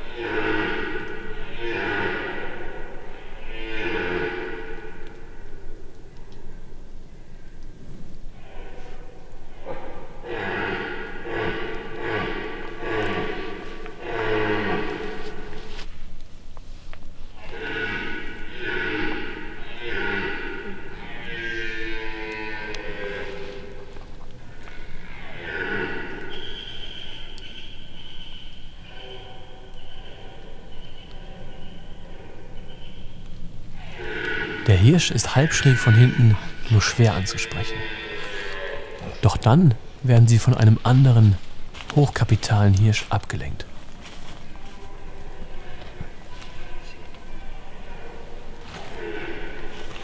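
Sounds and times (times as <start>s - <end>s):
deer stag roaring: 0.0s - 5.2s, 9.6s - 15.6s, 17.4s - 23.9s, 24.5s - 27.3s, 33.7s - 39.8s, 44.7s - 50.0s.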